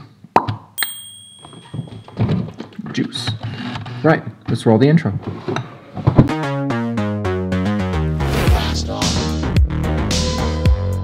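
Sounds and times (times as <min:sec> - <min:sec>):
thin steady high tone: 0:00.8 - 0:02.3.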